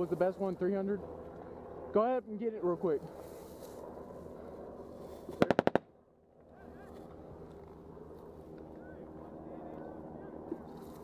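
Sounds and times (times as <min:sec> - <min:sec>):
steady low hum: 0:00.0 - 0:11.0
automatic gunfire burst: 0:05.4 - 0:05.8.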